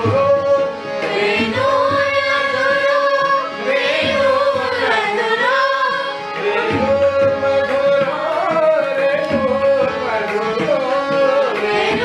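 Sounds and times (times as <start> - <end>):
classical vocal music: 0.0 - 12.0.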